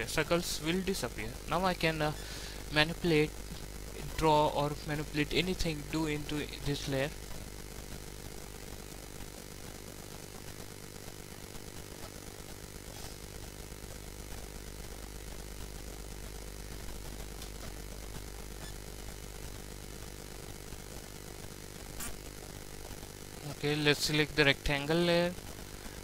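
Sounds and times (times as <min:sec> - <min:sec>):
electrical buzzing hum: 0:00.0 - 0:26.0.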